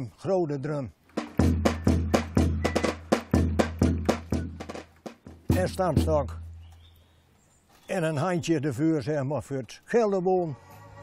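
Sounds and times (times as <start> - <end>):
bass drum thuds: 1.2 - 6.7.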